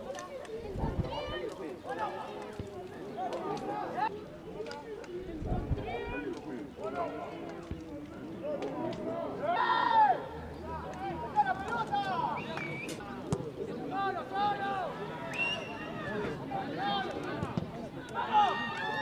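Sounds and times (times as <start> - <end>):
people shouting outdoors: 8.8 - 19.0.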